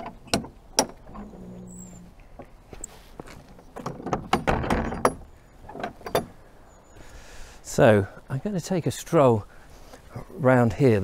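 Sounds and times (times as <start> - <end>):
wooden gate knocking and rattling: 0.0 - 1.3, 3.6 - 6.4.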